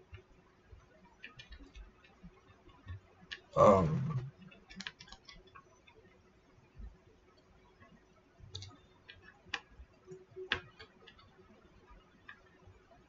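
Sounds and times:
small objects clicking and tapping: 1.1 - 3.6, 4.4 - 6.0, 7.8 - 12.6.

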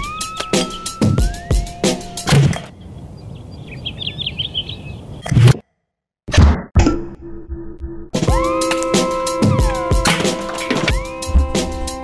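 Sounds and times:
music: 0.0 - 2.3, 8.0 - 12.0
birds chirping: 0.0 - 5.3, 8.4 - 12.0
outdoor ambience: 0.0 - 12.0.

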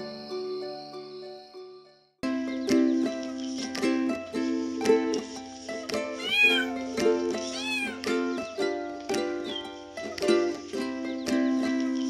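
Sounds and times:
plucked-string background music: 0.0 - 12.0
cat meowing: 6.2 - 6.8, 7.5 - 8.0.

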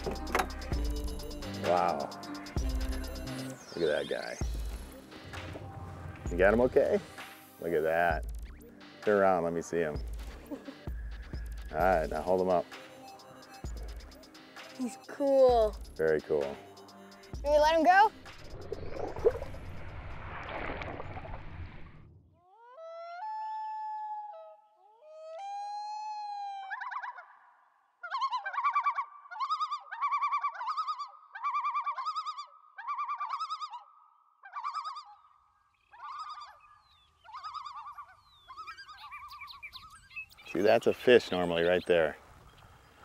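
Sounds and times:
loon calling: 0.0 - 6.4, 22.5 - 43.0
rush of water and bubbles: 18.4 - 22.1.

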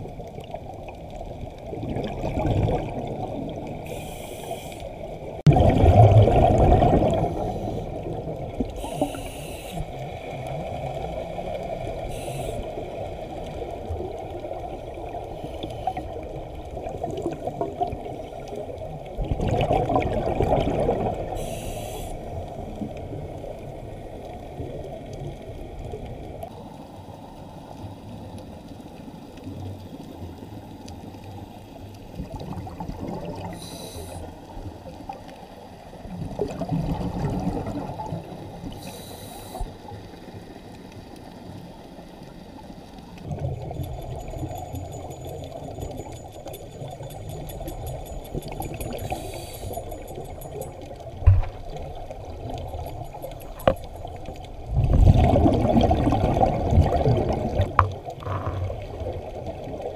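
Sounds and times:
underwater rushing churn: 0.0 - 26.6, 32.1 - 35.1, 36.0 - 40.5, 43.2 - 59.9
underwater bubbling surges: 0.0 - 31.4, 32.0 - 59.9
high hissing bursts: 3.9 - 4.8, 8.8 - 9.8, 12.1 - 12.7, 21.4 - 22.2, 33.6 - 34.2, 38.8 - 39.7, 49.0 - 49.8.

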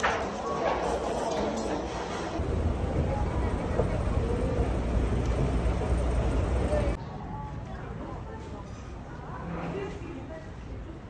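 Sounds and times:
faint voices: 0.0 - 11.0
escalator rumble: 2.4 - 7.0.

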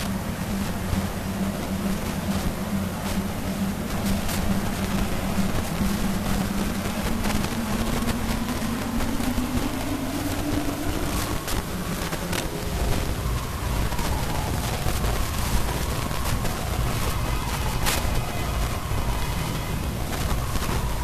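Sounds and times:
faint rising tone: 0.0 - 21.0
steady low hum: 0.0 - 21.0.

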